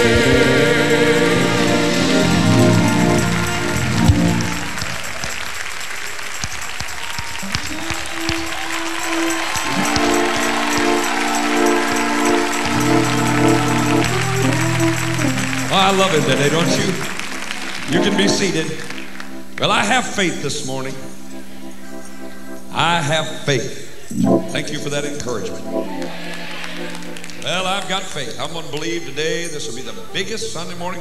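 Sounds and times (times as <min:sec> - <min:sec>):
organ playing held chords: 0:00.0 - 0:06.4, 0:07.4 - 0:31.0
crowd applauding and cheering: 0:00.0 - 0:20.4, 0:24.6 - 0:29.0.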